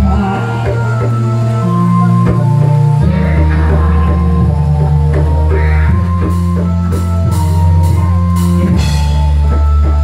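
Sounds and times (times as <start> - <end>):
deep bass tones: 0.0 - 10.0.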